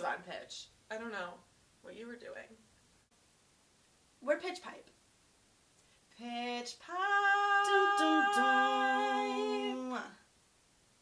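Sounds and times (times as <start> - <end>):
women singing a cappella harmony: 6.2 - 10.3.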